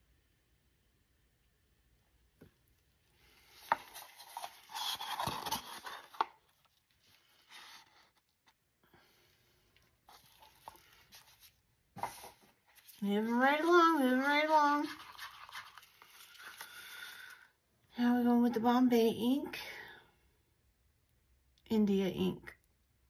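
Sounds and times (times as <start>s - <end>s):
stick scraping paper cup: 3.6s - 6.3s, 14.8s - 16.7s.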